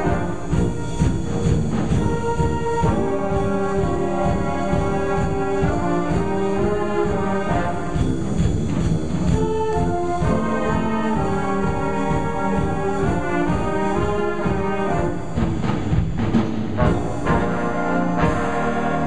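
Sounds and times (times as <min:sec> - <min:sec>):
jazz band playing: 0:00.0 - 0:19.0.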